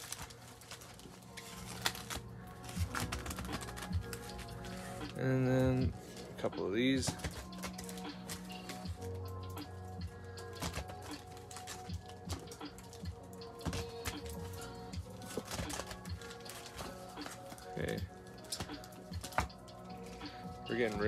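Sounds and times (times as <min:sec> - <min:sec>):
background music with held tones: 0:00.0 - 0:21.0
foil wrappers crinkling: 0:00.0 - 0:21.0.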